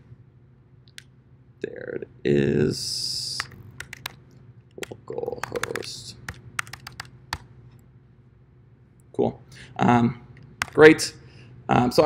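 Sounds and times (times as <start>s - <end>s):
computer keyboard keystrokes: 3.4s - 4.2s, 4.8s - 7.5s, 10.6s - 10.8s.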